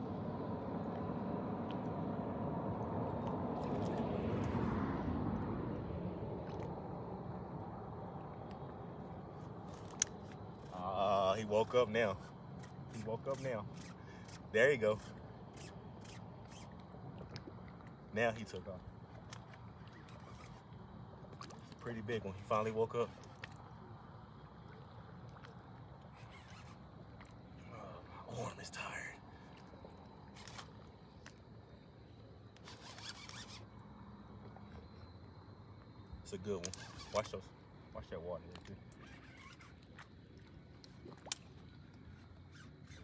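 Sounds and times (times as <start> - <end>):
low background hum: 0.0 - 43.0
fishing reel rasping: 12.1 - 16.8, 20.0 - 20.6, 26.1 - 26.8, 32.6 - 33.8, 36.6 - 37.4, 39.0 - 39.8
fishing reel clicking: 32.6 - 33.7, 36.6 - 37.4.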